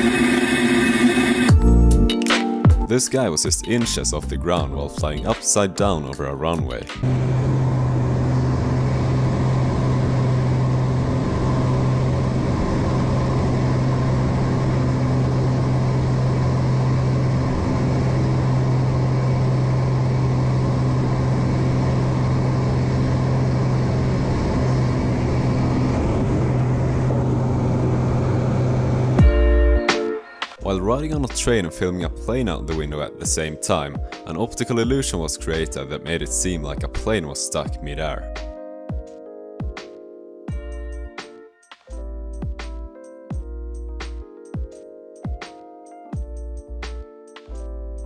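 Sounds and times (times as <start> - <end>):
light aircraft engine drone: 6.9 - 29.6.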